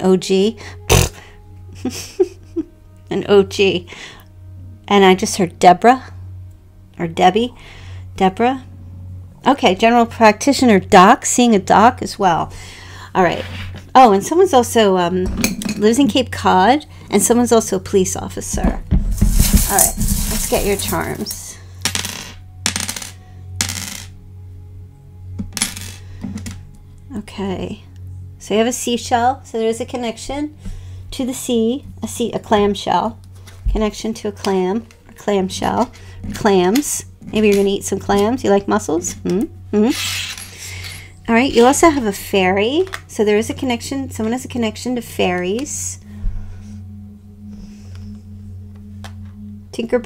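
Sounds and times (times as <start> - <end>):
ambient drone music: 0.0 - 50.0.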